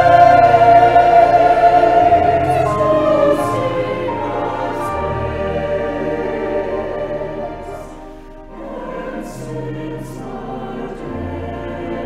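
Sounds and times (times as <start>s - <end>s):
choir singing long notes: 0.0s - 12.0s.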